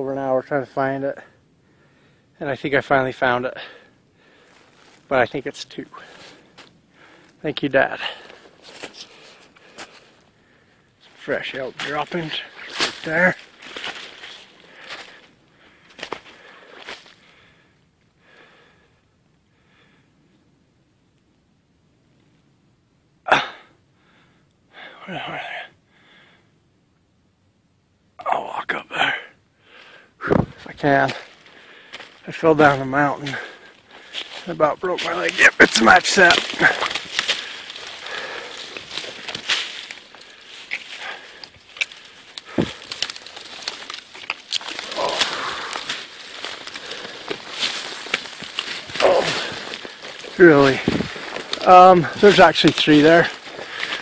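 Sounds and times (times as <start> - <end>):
footsteps crunching through dry grass: 4.3 - 17.3, 30.3 - 54.0
twigs snapping and scraping: 6.0 - 7.4, 8.1 - 10.3, 11.0 - 17.2, 30.3 - 54.0
heavy thump: 30.2 - 30.6.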